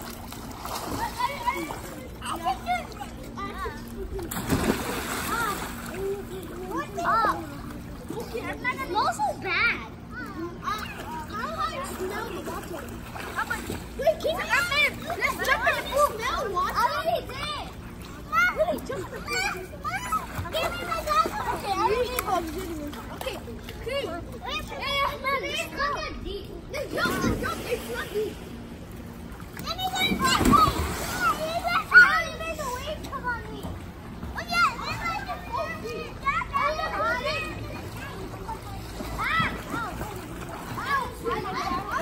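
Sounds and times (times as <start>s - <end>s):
children splashing in pool: 0.0s - 9.2s, 10.6s - 25.7s, 26.8s - 42.0s
children shouting: 18.3s - 22.6s, 29.6s - 33.2s, 34.4s - 42.0s.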